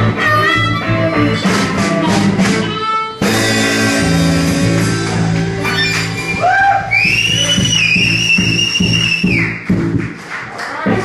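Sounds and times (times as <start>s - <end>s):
amplified harmonica wailing: 0.0s - 9.4s
bass guitar: 0.0s - 11.0s.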